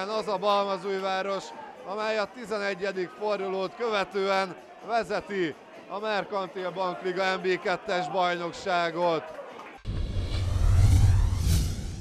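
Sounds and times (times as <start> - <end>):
deep bass rumble: 9.9 - 12.0
whoosh: 9.9 - 12.0.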